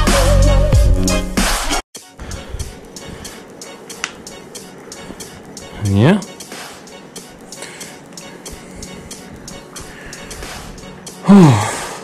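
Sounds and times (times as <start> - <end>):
electronic music with steady beat: 0.0 - 12.0.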